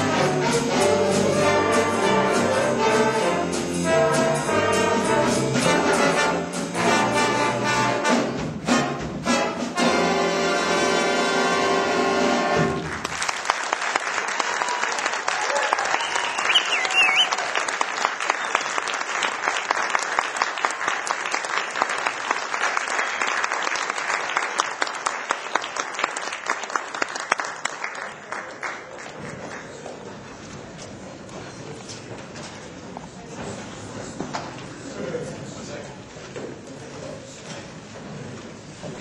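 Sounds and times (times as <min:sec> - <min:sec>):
audience applauding: 0:12.8 - 0:30.1.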